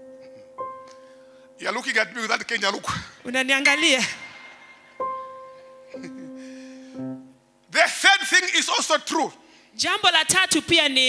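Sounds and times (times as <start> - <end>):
sustained instrument notes: 3.6 - 7.2.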